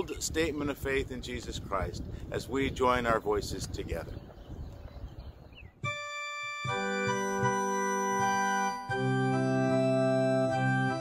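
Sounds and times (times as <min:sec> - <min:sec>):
sustained organ chord: 0:05.8 - 0:11.0.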